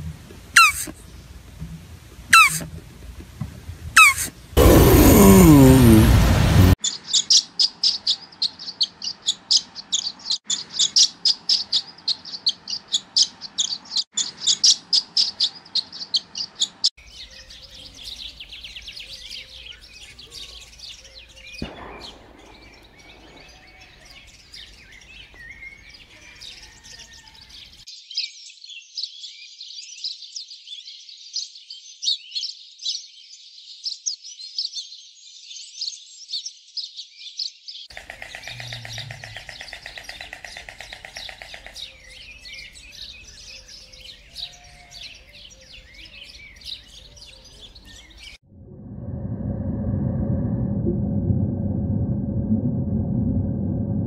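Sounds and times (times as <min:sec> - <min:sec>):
small birds chirping: 0:00.5 - 0:01.6, 0:02.2 - 0:02.8, 0:03.6 - 0:06.1, 0:06.8 - 0:48.4.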